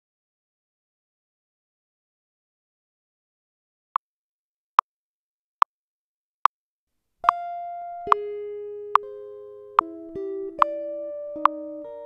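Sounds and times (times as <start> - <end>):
metronome clicking: 11.4 - 11.6.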